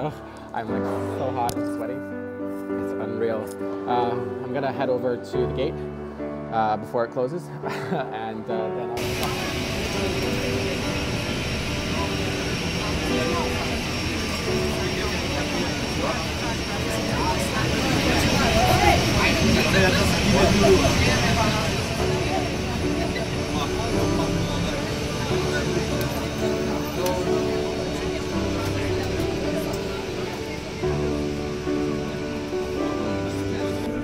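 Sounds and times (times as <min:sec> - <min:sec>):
people talking: 0:06.6 - 0:31.0
quiet guitar music: 0:08.6 - 0:34.0
airport apron rumble: 0:09.0 - 0:34.0.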